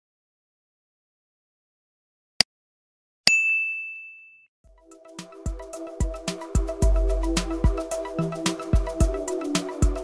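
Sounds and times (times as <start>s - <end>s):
bright bell ding: 3.3s - 4.5s.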